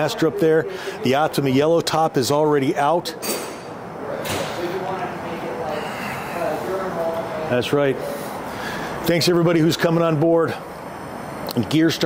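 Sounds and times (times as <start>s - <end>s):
distant voices talking: 0.0s - 12.0s
steady room noise hiss: 0.0s - 12.0s.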